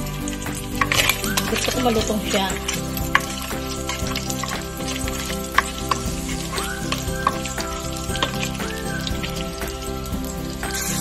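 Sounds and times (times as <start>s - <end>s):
background music: 0.0s - 11.0s
meat sizzling in a wok: 0.0s - 11.0s.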